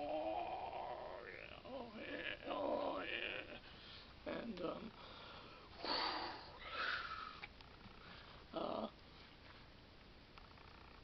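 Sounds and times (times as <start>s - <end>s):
man sniffing through nose: 5.8s - 6.5s.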